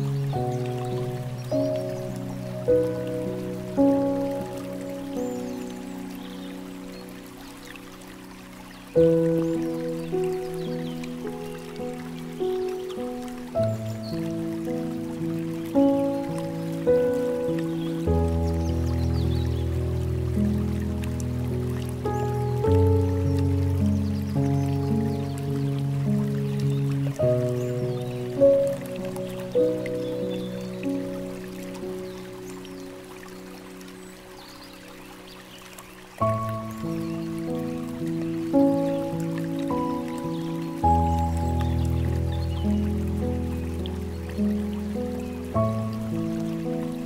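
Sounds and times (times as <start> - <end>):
flowing water trickle: 0.0 - 47.0
slow gentle piano music: 0.0 - 47.0.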